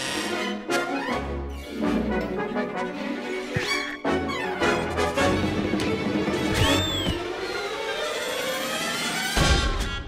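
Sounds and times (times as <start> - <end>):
cartoon underscore music: 0.0 - 10.0
whistle-like tone: 6.6 - 7.3.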